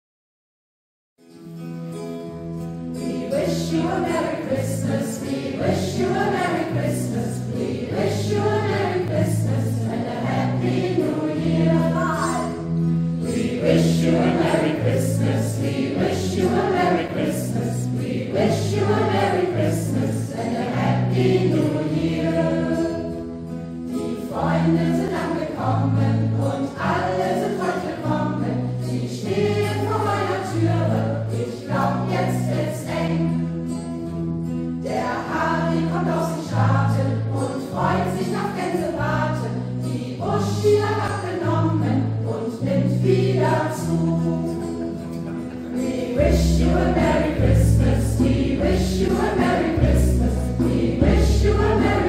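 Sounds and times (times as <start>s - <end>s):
strummed acoustic guitars: 1.2s - 52.0s
group singing a carol: 2.9s - 34.1s, 34.8s - 52.0s.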